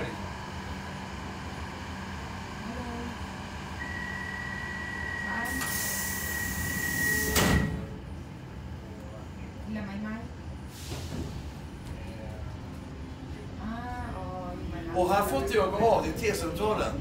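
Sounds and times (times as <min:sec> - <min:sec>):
metro train rumbling in tunnel: 0:00.0 - 0:17.0.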